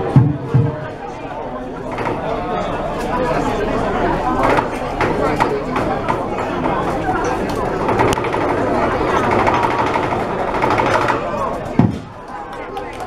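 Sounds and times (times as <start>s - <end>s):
crowd of diners chattering: 0.0s - 13.0s.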